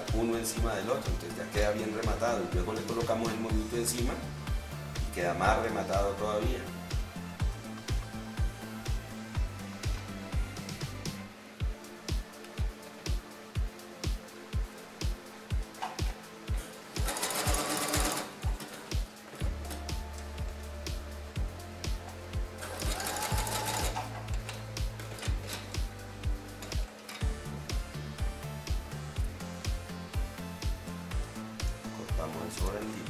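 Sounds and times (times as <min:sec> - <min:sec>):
background music with steady beat: 0:00.0 - 0:33.0
sewing machine stitching: 0:16.9 - 0:19.0, 0:22.6 - 0:25.8.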